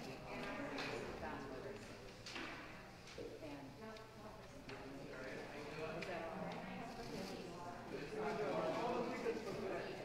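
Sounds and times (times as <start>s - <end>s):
faint talking of people: 0.0s - 10.0s.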